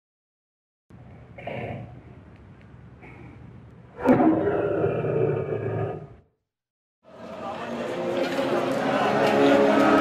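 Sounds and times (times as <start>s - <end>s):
lion roar: 4.0s - 6.3s.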